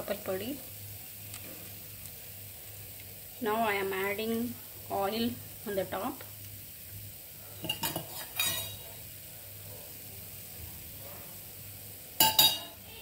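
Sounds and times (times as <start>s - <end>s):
faint sizzle in oil: 0.0s - 13.0s.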